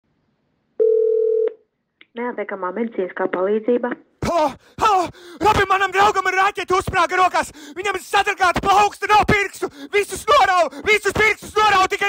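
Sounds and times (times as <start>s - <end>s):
telephone ringback beep: 0.8s - 1.6s.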